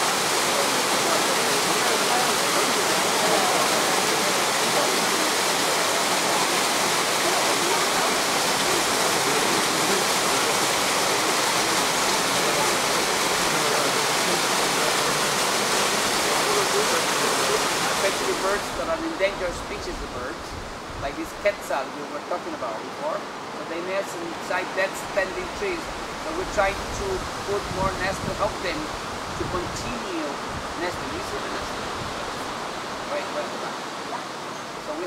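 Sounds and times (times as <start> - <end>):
small waterfall rushing: 0.0 - 35.0.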